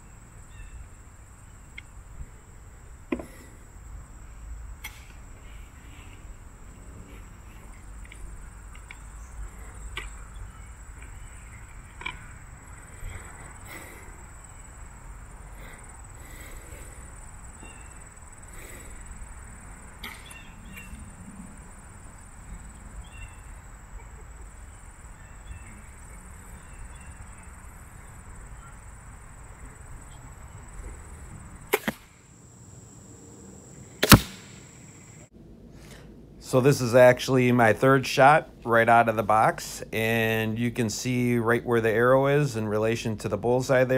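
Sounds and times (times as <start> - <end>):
crossbow firing: 4.8 - 5.2, 20.0 - 20.4, 31.7 - 32.2, 34.0 - 34.8
bolt striking foam target: 34.0 - 34.4.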